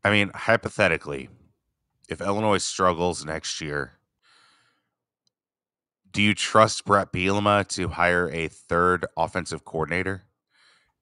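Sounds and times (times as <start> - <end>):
faint intake of breath: 4.2 - 5.0, 10.5 - 11.0.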